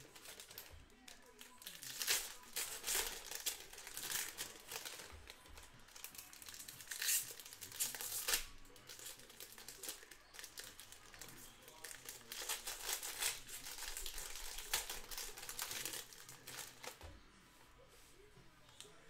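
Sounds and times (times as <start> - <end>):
card pack wrappers crinkling: 0.0 - 17.0
wrappers ripping open: 0.0 - 17.0.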